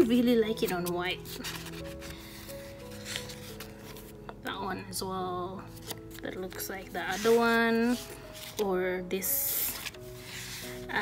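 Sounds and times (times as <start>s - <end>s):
notebook pages rustling: 0.0s - 4.2s, 5.7s - 11.0s
soft background music: 0.0s - 11.0s.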